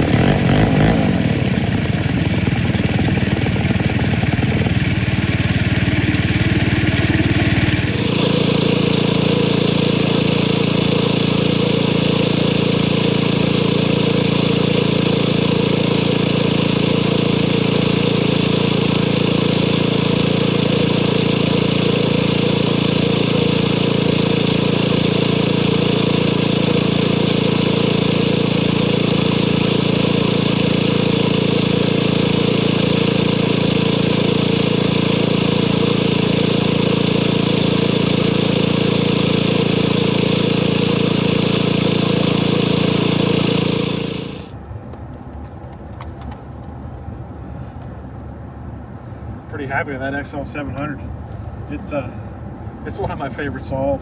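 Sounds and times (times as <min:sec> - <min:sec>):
small gasoline engine running: 0:00.0 - 0:44.6.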